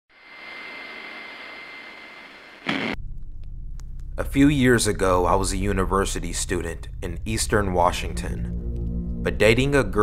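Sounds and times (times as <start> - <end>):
static hiss with high tone: 0.1 - 3.0
sudden loud burst: 2.6 - 3.0
low rumble: 2.8 - 10.0.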